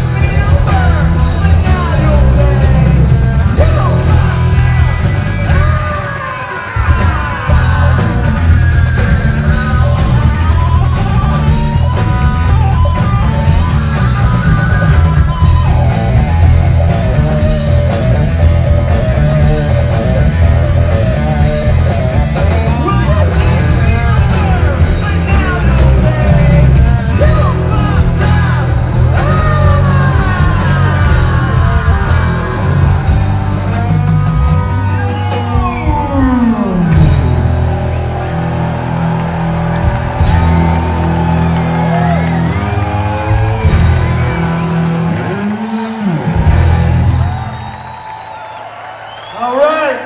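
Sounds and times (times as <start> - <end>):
yelled vocals: 0.0 - 47.4
live rock band playing: 0.0 - 49.6.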